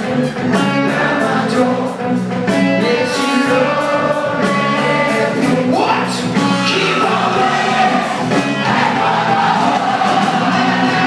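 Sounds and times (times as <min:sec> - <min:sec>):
lead singer's voice: 0:00.0 - 0:11.0
live rock band playing: 0:00.0 - 0:11.0.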